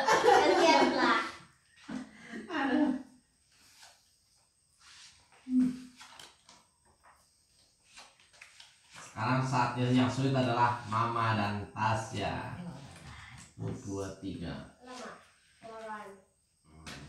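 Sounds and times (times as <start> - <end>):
people's voices: 0.0 - 1.3, 9.2 - 15.1, 16.7 - 17.0.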